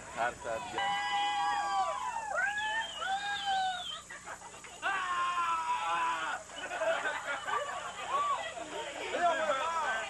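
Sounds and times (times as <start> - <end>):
voices howling together: 0.5 - 4.1, 4.8 - 6.5.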